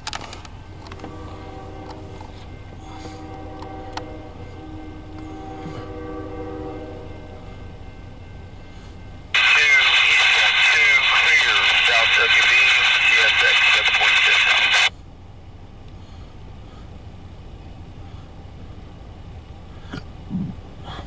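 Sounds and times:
low steady rumble: 0.0s - 21.0s
voice over two-way radio: 9.4s - 14.9s.

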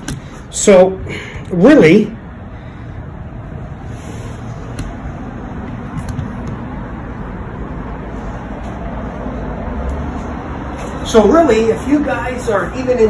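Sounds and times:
distant road traffic rumble: 0.0s - 13.0s.

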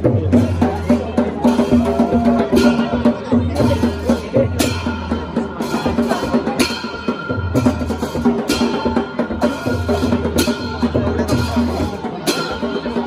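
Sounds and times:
deep drum pattern: 0.0s - 13.0s.

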